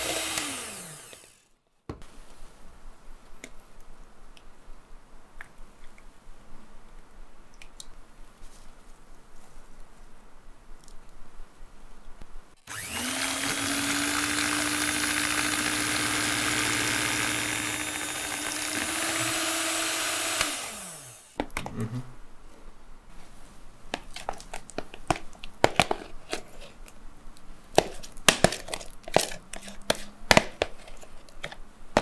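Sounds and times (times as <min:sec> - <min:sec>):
electric hand mixer whipping: 0:00.0 - 0:01.4, 0:12.6 - 0:21.4.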